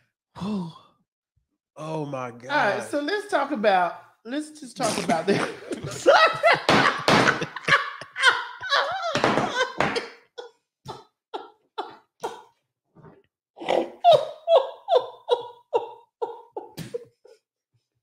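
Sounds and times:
woman laughing hard: 4.8 - 10.5, 14.0 - 17.0.

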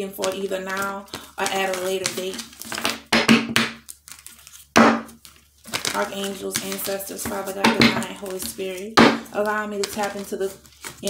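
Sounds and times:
cards rustling and clicking: 0.0 - 11.0.

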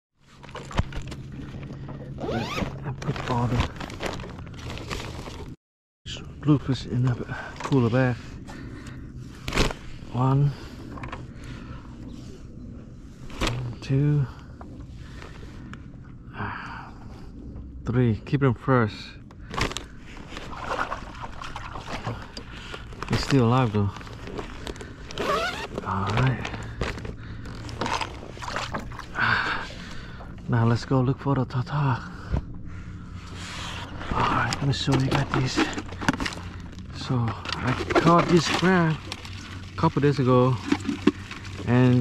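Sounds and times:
low steady background noise: 6.1 - 42.0
water sounds: 20.2 - 22.7, 27.8 - 30.2, 37.5 - 42.0.

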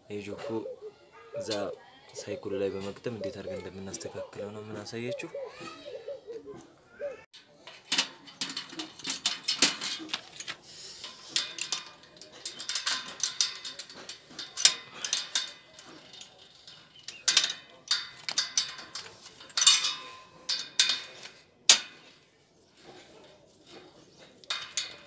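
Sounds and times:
metallic clicks and clinks: 7.4 - 22.2, 23.2 - 25.0.

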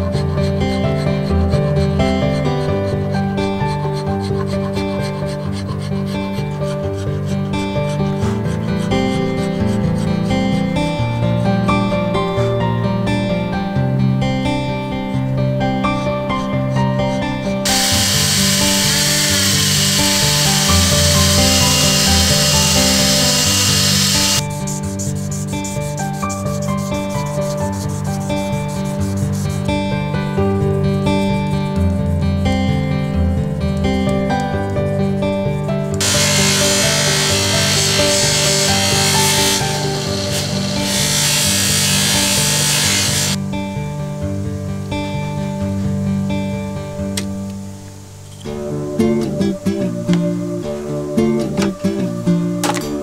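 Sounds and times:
hand file rasping: 0.0 - 10.7, 17.7 - 29.8, 36.0 - 43.4
background music: 0.0 - 53.0
rotary tool grinding: 17.7 - 24.4, 36.0 - 43.4.

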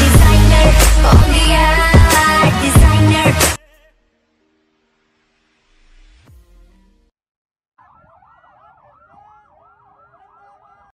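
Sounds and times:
sirens wailing: 7.8 - 10.9.

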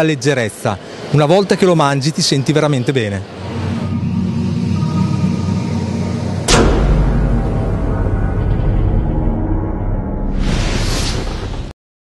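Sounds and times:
low rumbling drone: 3.2 - 11.7
logo ident music: 3.4 - 11.7.

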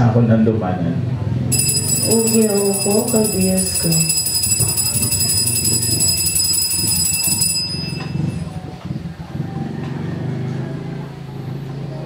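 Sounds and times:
altar bells rung rapidly: 1.5 - 8.7.

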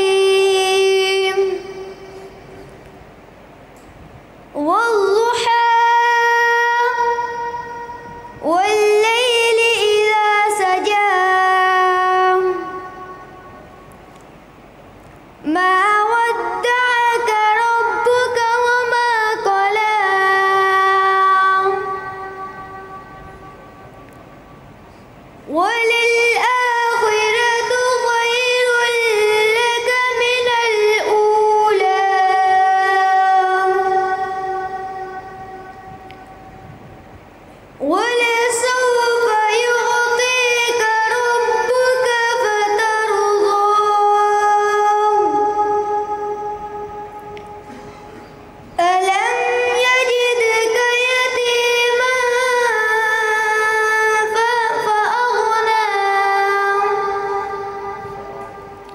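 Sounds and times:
boy reciting into a microphone: 0.0 - 3.0, 4.5 - 14.2, 15.4 - 36.6, 37.5 - 58.9
low steady background hiss: 0.0 - 58.9.

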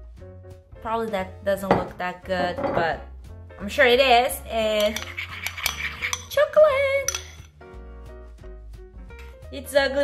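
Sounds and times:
background music: 0.0 - 10.0
metal spoon scraping ceramic bowl: 4.7 - 7.5.

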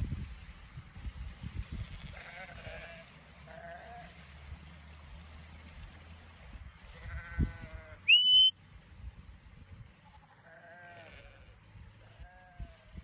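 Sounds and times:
sheep bleating: 2.1 - 4.1, 7.0 - 8.2, 10.4 - 11.6
shepherd's whistle: 8.1 - 8.5.

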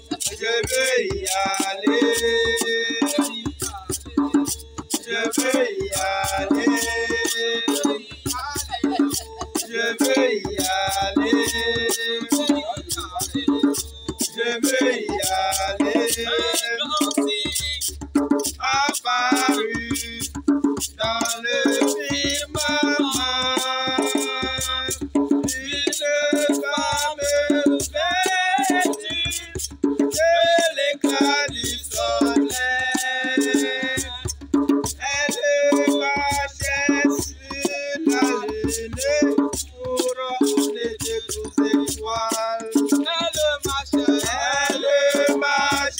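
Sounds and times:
people singing: 0.0 - 17.8, 18.4 - 20.3, 21.0 - 45.9
drums keeping a beat: 0.0 - 45.9
rattles or shakers: 0.0 - 45.9.

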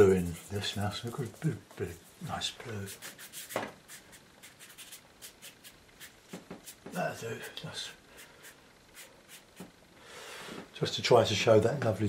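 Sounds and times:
brush strokes on damp paper: 0.0 - 9.7.

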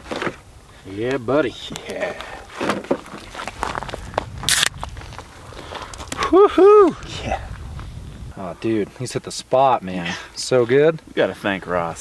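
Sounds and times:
beer can opening with fizzing hiss: 4.5 - 4.8.

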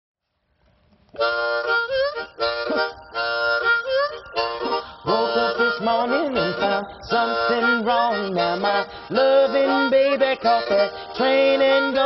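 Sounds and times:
blues harmonica playing: 1.1 - 12.0
man singing: 5.0 - 12.0.

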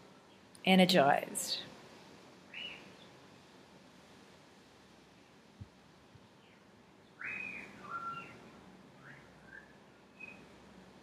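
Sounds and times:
bird chirping: 2.5 - 3.1, 6.4 - 8.4, 9.0 - 10.5.

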